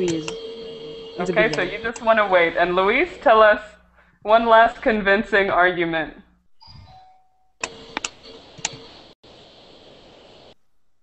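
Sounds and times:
sharp clicks: 0:07.6 - 0:08.8
microphone line hiss: 0:07.6 - 0:11.0.

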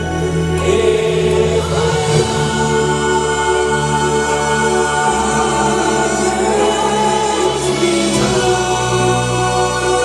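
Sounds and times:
male vocal group singing harmony: 0:00.0 - 0:10.0.

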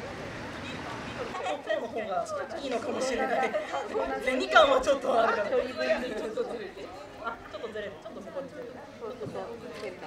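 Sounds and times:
group chatter: 0:00.0 - 0:10.0.

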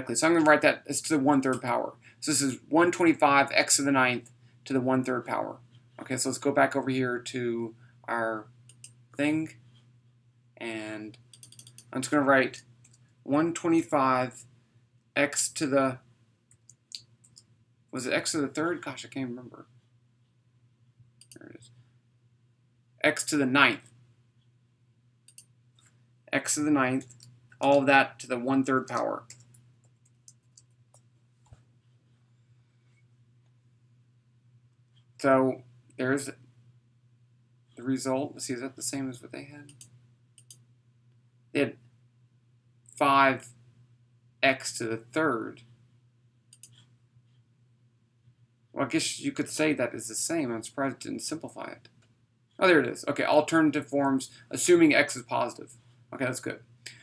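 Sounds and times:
faint low hum: 0:00.0 - 0:57.0
faint clicks: 0:11.2 - 0:11.9, 0:25.2 - 0:26.0, 0:39.7 - 0:41.2, 0:46.5 - 0:47.4.

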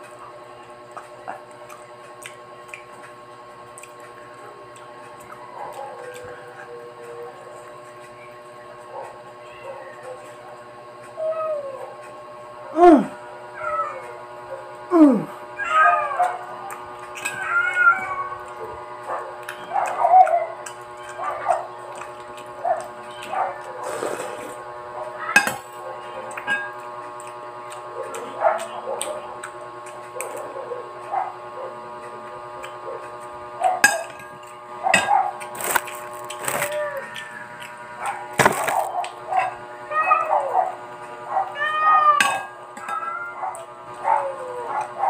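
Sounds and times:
steady hum: 0:00.0 - 0:45.0.

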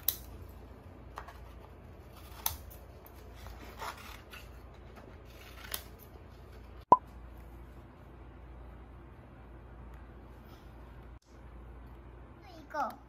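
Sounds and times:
scissors snipping paper: 0:02.0 - 0:06.1.

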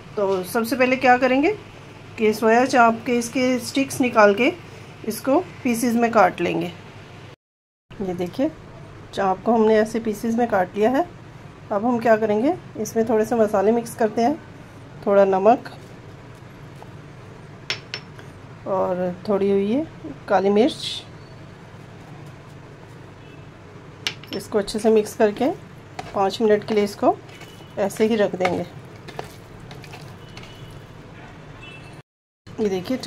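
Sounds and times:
soft hand mixing food: 0:15.4 - 0:17.6, 0:21.5 - 0:31.2.

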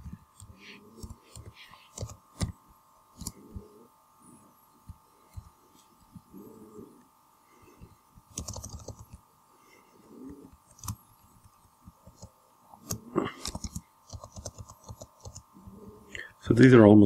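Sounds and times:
faint electrical hum: 0:00.0 - 0:17.0
keyboard typing: 0:00.4 - 0:02.5, 0:08.3 - 0:09.2, 0:10.7 - 0:15.4.

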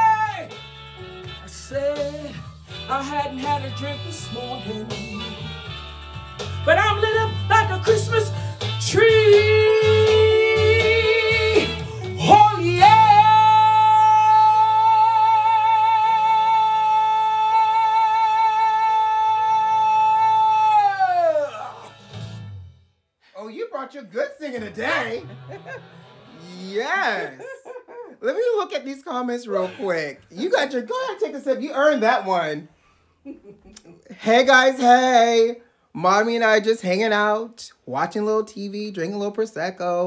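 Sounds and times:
backing track music: 0:00.0 - 0:23.1, 0:24.1 - 0:27.5.

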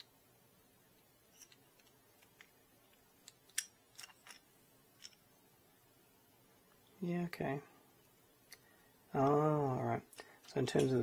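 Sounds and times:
plastic parts clicking together: 0:01.0 - 0:05.2.

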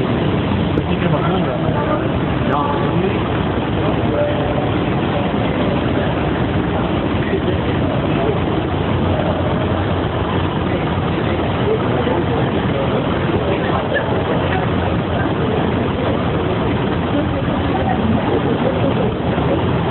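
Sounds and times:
crowd chatter: 0:00.0 - 0:19.9
idling engines humming: 0:00.0 - 0:19.9.

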